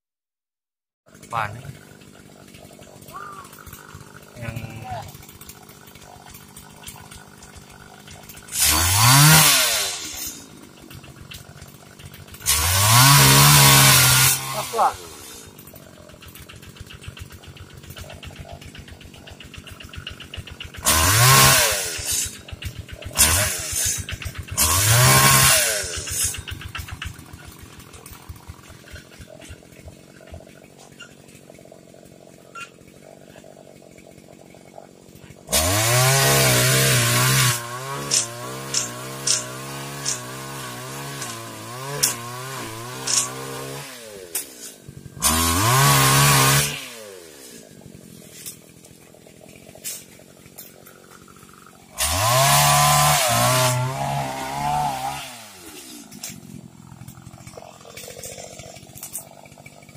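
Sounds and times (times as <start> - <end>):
pole saw engine idling and revving: 1.0 - 59.9.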